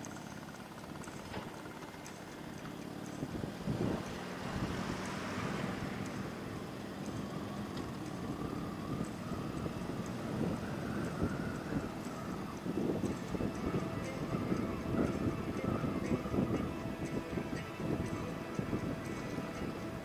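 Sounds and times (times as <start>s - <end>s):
wind buffeting microphone: 3.0s - 20.0s.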